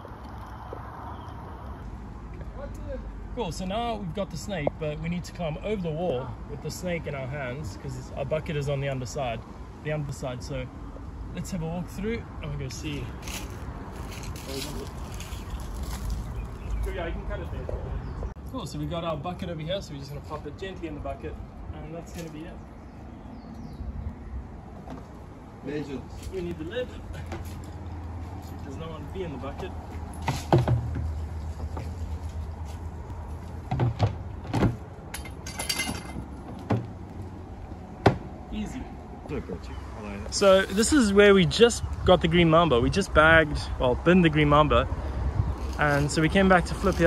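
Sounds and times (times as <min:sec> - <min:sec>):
plastic knocks and clunks: 0:30.5 - 0:31.1, 0:33.6 - 0:34.8, 0:36.4 - 0:36.9, 0:38.0 - 0:38.3.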